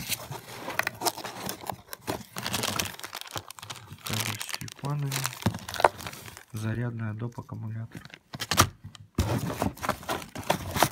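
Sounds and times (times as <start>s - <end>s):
plastic bag crinkling: 0.8s - 6.8s
items rattling and knocking in box: 5.0s - 6.5s, 8.0s - 10.9s.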